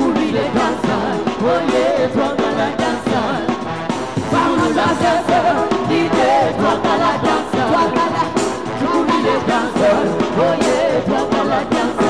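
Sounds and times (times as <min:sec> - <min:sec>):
drums: 0:00.0 - 0:12.0
keyboard: 0:00.0 - 0:12.0
singers singing together: 0:00.0 - 0:12.0.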